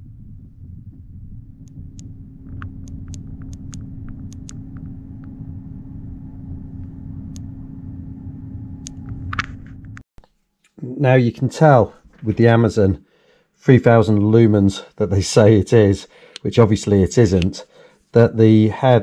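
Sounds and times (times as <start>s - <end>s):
constant hum: 0.0s - 10.0s
low rumble: 0.0s - 10.0s.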